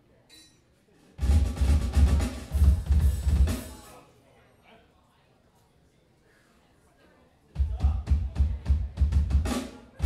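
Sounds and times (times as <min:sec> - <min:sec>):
heavy bass drum hits: 0:01.2 - 0:03.6
rock drum kit: 0:01.2 - 0:03.9, 0:07.6 - 0:10.0.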